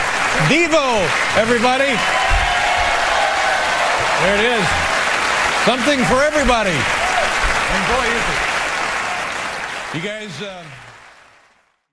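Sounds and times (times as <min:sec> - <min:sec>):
studio audience applauding: 0:00.0 - 0:11.9.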